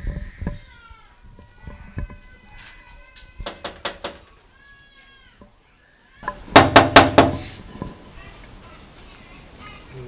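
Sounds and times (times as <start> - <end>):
rap on a glass door: 3.4 - 4.4, 6.2 - 8.0.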